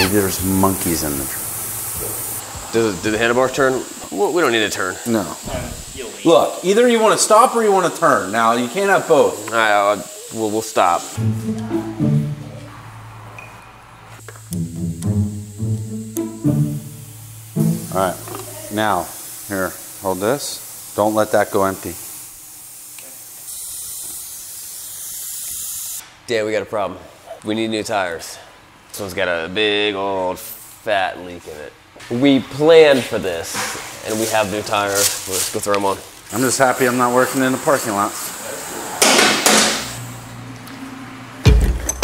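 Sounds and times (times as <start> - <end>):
compressed-air brake bleeder hissing: 0.0 - 11.4, 14.2 - 26.0, 36.3 - 40.4.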